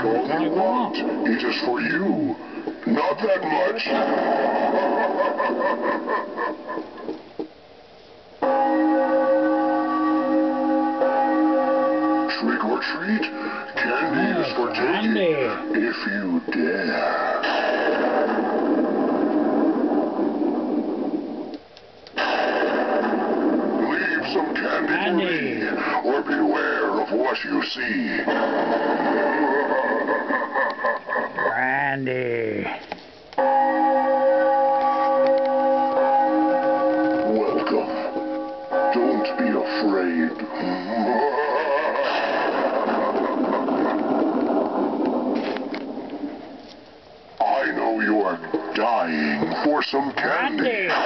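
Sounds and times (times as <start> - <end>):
electronic spooky chord: 8.4 - 16.2, 33.4 - 43.8
bell-like chord through speaker: 33.4 - 40.7.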